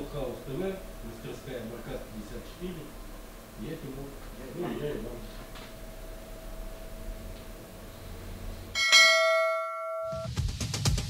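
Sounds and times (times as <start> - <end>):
faint workshop room noise: 0.0 - 9.8
bell ringing: 8.7 - 10.3.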